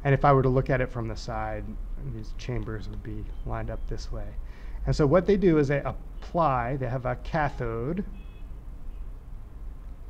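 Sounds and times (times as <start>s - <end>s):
person speaking: 0.0s - 8.2s
low steady hum: 0.0s - 10.0s
faint high two-tone beep: 7.5s - 9.0s.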